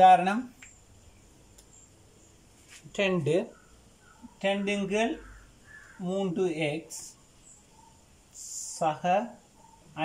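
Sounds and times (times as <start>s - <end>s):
man speaking: 0.0s - 0.6s, 2.9s - 3.6s, 4.4s - 5.3s, 6.0s - 7.2s, 8.4s - 9.4s.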